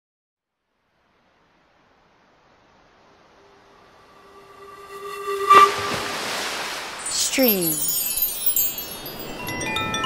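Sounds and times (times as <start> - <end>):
sharp hit: 3.5 - 7.0
whistle-like tone: 3.8 - 7.2.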